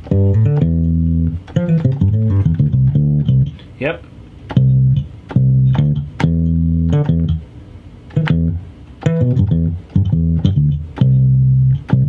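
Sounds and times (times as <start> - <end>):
low-pitched sampled instrument notes: 0.0 - 3.6, 4.5 - 7.4, 8.1 - 12.0.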